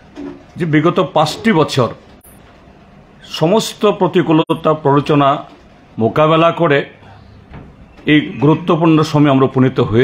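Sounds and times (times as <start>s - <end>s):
man speaking into microphones: 0.6s - 2.1s, 3.2s - 7.2s, 8.0s - 10.0s.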